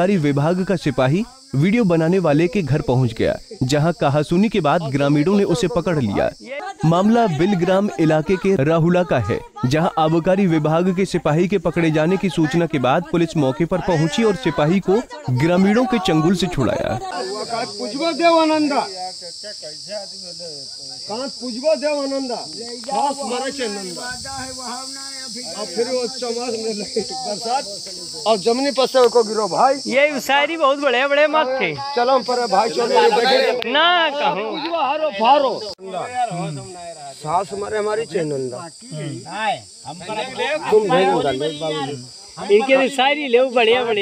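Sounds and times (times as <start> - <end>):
high-pitched hiss: 0.0 - 44.0
high-pitched insect drone: 0.0 - 44.0
men talking: 0.0 - 44.0.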